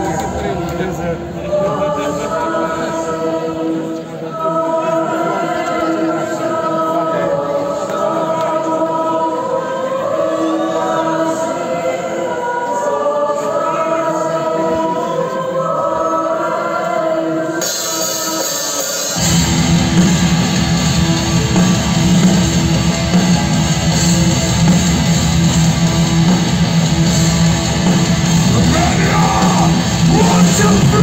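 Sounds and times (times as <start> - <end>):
choir-like music over pa: 0.0 - 31.0.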